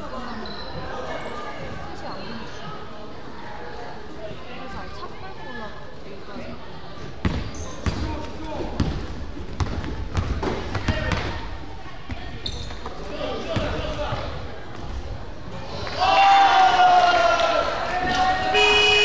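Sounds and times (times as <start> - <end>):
players and spectators voices: 0.0 - 19.0.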